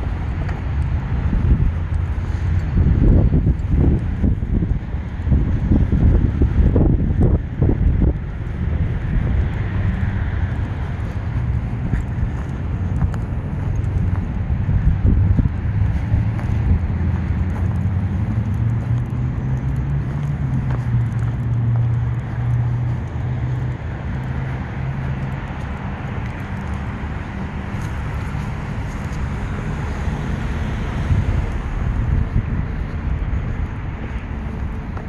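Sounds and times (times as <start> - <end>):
low vehicle engine hum: 0.0 - 35.0
steady outdoor rumble: 0.0 - 35.0.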